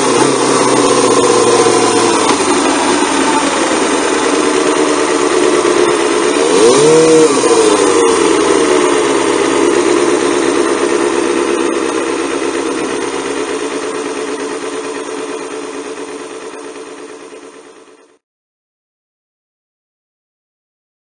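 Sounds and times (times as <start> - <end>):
motorcycle engine at low revs: 0.0 - 18.2.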